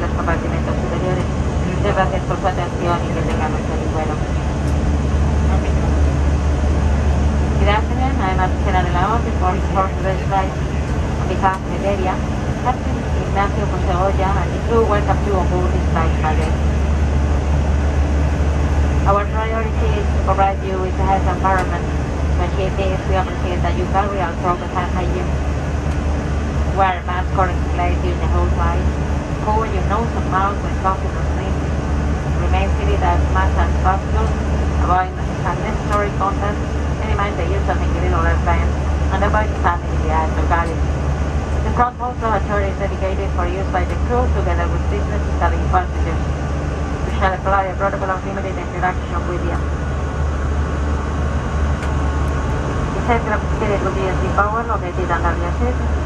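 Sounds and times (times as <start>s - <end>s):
airliner cabin drone: 0.0s - 56.0s.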